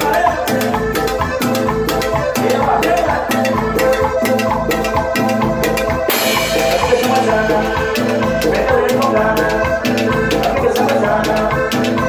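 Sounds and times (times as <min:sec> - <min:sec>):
drum kit and percussion beat: 0:00.0 - 0:12.0
sustained keyboard notes: 0:00.0 - 0:12.0.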